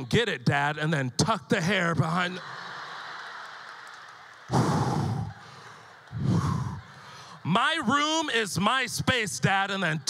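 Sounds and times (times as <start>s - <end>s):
audience laughter: 2.1s - 8.0s.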